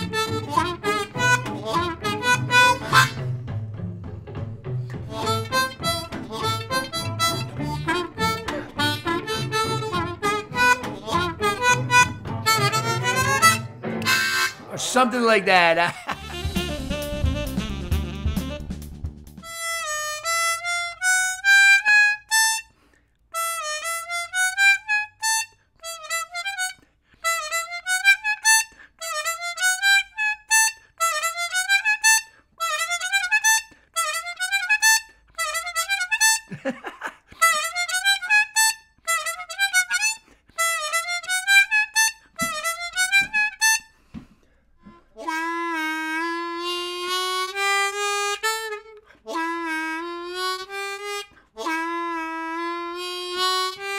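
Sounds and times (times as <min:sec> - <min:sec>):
harmonica lick with bends: 0:00.0 - 0:03.4, 0:04.8 - 0:53.9.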